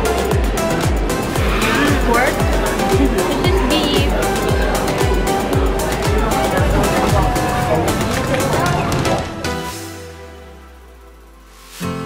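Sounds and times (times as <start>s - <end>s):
electronic music with kick drum: 0.0s - 12.0s.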